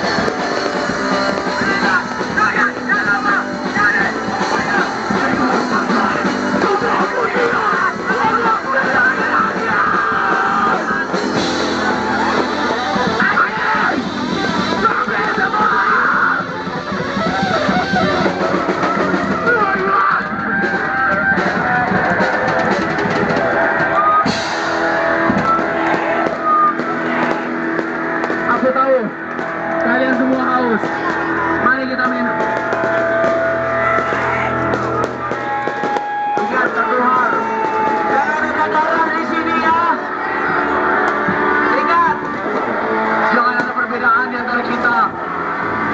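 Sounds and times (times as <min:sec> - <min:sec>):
rock band playing live: 0:00.0 - 0:45.9
voices shouting: 0:00.0 - 0:45.9.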